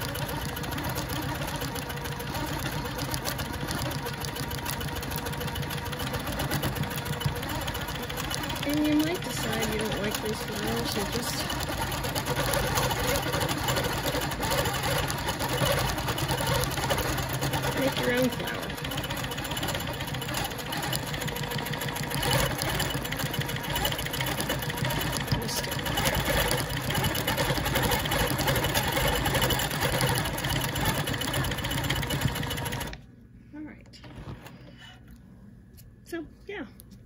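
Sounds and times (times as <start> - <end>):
quilting machine stitching: 0.0 - 33.0.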